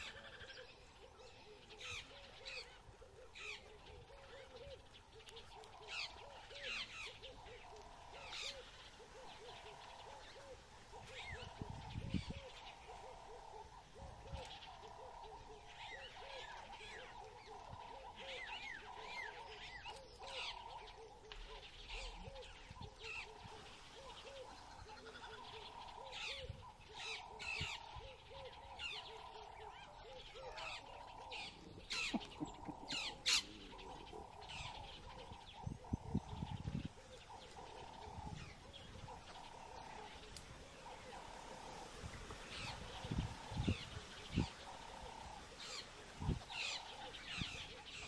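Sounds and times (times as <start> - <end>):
low repeating bird call: 0.0 - 48.0
wild birds chirping: 0.0 - 48.0.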